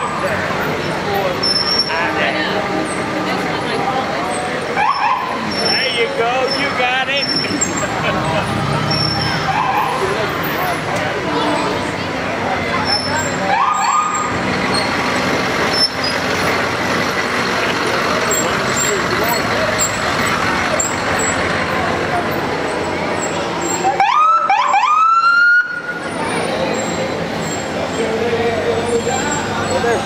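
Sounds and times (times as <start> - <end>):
crowd voices: 0.0 - 30.0
vehicles idling: 0.0 - 30.0
emergency siren whooping: 13.4 - 14.4, 23.8 - 26.0.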